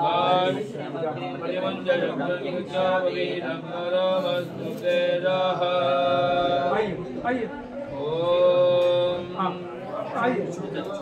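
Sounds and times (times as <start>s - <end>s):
men chanting in long held tones: 0.0s - 11.0s.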